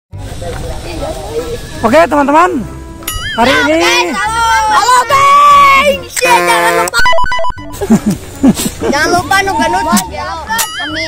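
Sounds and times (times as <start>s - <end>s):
faint voices: 0.1s - 7.2s.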